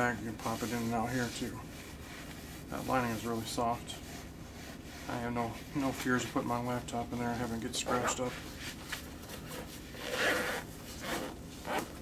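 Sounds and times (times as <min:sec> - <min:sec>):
hands handling nylon fabric: 0:07.7 - 0:12.0
zipper rasping slide: 0:07.9 - 0:08.4, 0:09.5 - 0:12.0.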